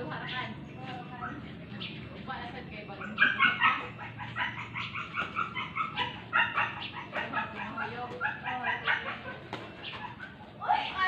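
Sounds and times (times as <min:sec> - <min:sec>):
animal rapid repeated calls: 0:03.0 - 0:11.0.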